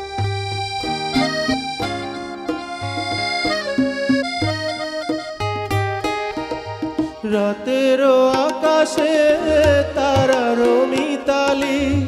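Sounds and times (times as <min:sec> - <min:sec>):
piano accordion melody: 0:00.0 - 0:10.3.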